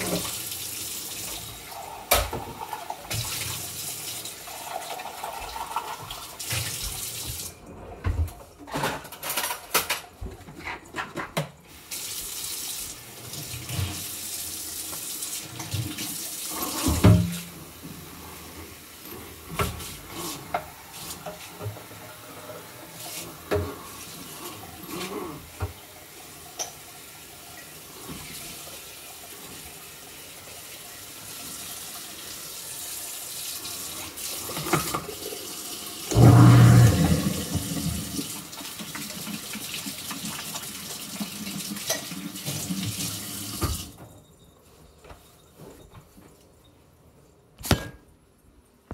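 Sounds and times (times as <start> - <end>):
faucet running into sink: 0.0 - 8.2, 11.7 - 44.0.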